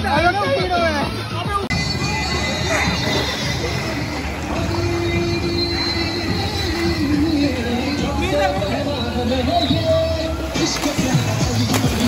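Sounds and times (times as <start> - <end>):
pool water splashing: 0.0 - 12.0
steady squeal-like tone: 1.7 - 10.4.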